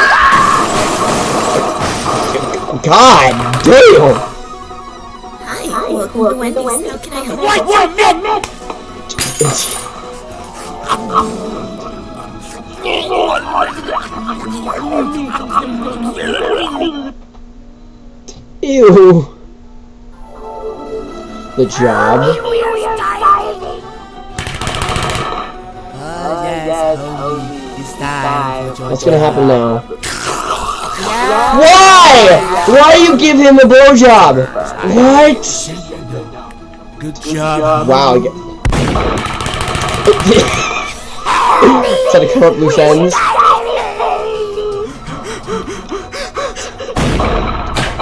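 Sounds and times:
cartoon character voice: 0:05.4 - 0:08.4, 0:12.7 - 0:17.1, 0:21.6 - 0:23.8, 0:40.5 - 0:44.8.

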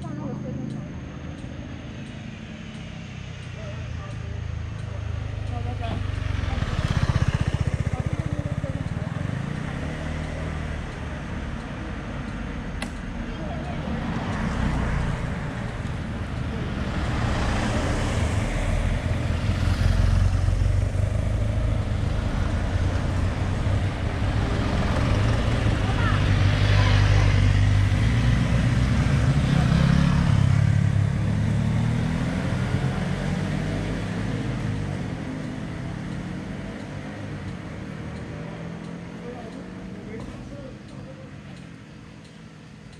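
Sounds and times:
vehicles passing: 0:00.0 - 0:42.9.

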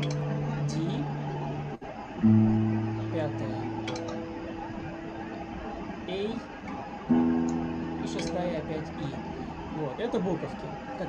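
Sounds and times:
low guitar string plucked: 0:00.0 - 0:09.8
guitar string ringing: 0:00.0 - 0:11.0.

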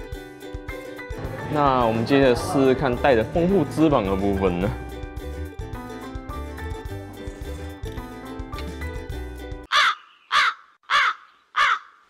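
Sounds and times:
background music with beat: 0:00.0 - 0:09.7
crow cawing: 0:09.7 - 0:12.0.

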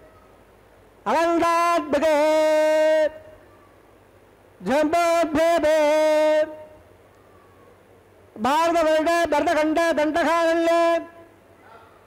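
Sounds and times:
man chanting: 0:01.1 - 0:03.3, 0:04.6 - 0:06.8, 0:08.4 - 0:11.3.

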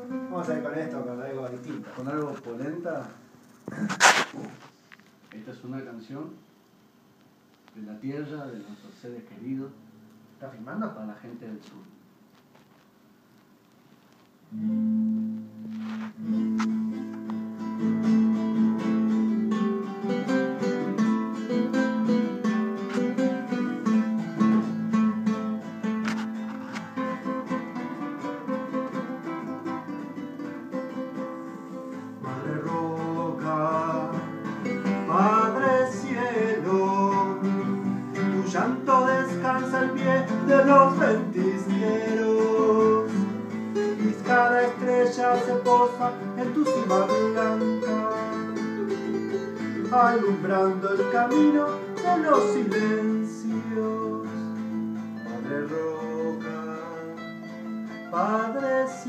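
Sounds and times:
classical guitars playing: 0:00.0 - 0:03.0, 0:14.4 - 0:59.0
man singing: 0:32.2 - 0:59.0.

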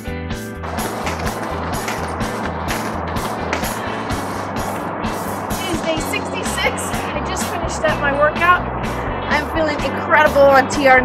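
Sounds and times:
music with steady beat and bass: 0:00.0 - 0:11.0
dense noisy wash: 0:00.6 - 0:11.0.

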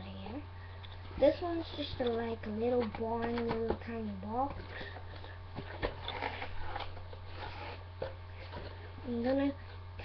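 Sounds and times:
low electrical hum: 0:00.0 - 0:10.0
cardboard box rustling and scraping: 0:05.5 - 0:08.8.

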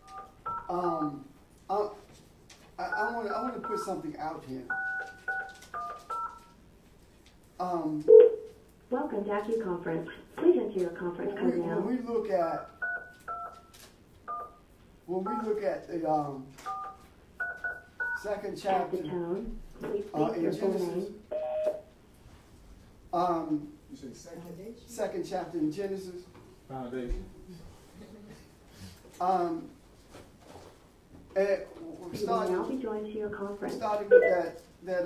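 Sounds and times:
touch-tone keypad beeps: 0:00.0 - 0:00.7, 0:03.6 - 0:04.0, 0:04.7 - 0:06.5, 0:12.7 - 0:13.7, 0:14.3 - 0:14.6, 0:15.3 - 0:15.5, 0:16.7 - 0:18.2, 0:34.1 - 0:34.4.

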